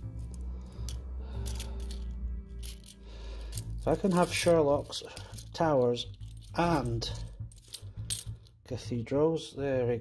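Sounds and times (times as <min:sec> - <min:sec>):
background music: 0:00.0 - 0:10.0
coins clinking: 0:00.8 - 0:08.4.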